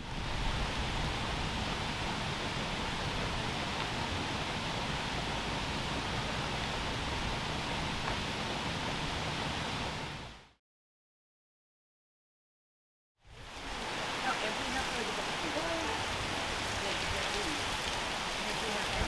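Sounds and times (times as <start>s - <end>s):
flowing water rushing: 0.0s - 10.3s, 13.3s - 19.0s.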